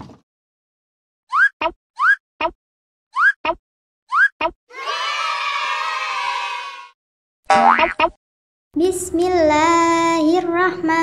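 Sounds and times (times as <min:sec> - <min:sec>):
children cheering and shouting: 0:04.7 - 0:07.0
rising boing glide: 0:07.5 - 0:08.2.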